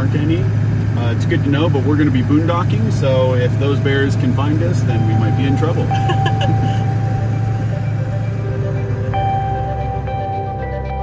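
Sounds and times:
in-cab engine and road noise: 0.0s - 11.0s
background music: 3.5s - 11.0s.

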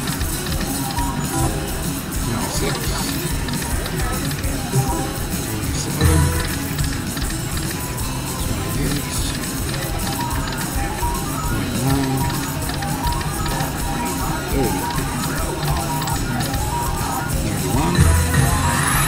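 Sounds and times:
background voices: 0.0s - 19.0s
music: 0.0s - 19.0s.

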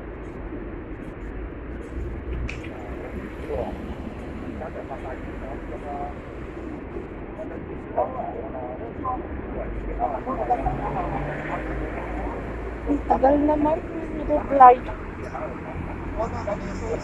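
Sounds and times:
traffic rumble: 0.0s - 17.0s
people talking: 2.5s - 17.0s.

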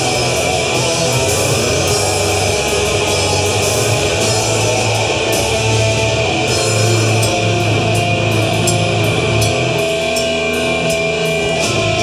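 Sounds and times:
cymbal hits: 0.0s - 12.0s
drum kit: 0.0s - 12.0s
electric guitars: 0.0s - 12.0s.

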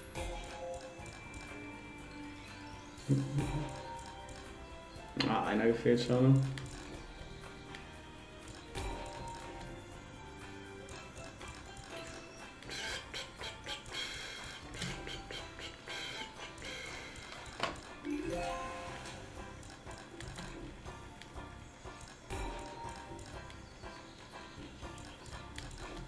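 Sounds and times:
slot game background music: 0.0s - 26.0s.

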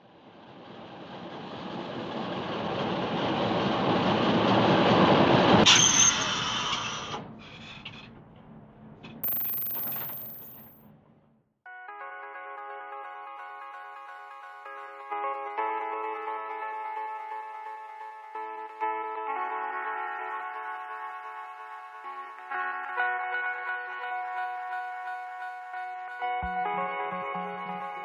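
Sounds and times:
electronic music with synth chords: 25.6s - 28.0s.

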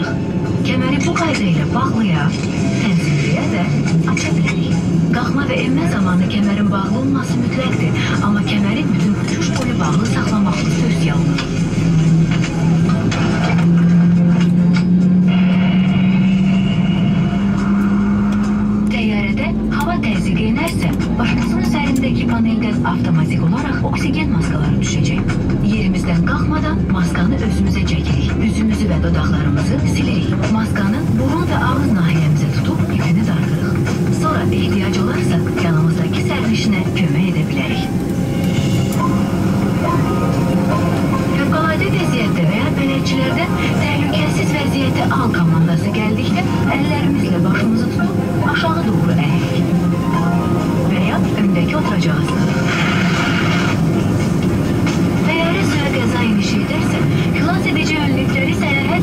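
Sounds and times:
jet engine low drone: 0.0s - 59.0s
jet engine whine: 0.0s - 59.0s.

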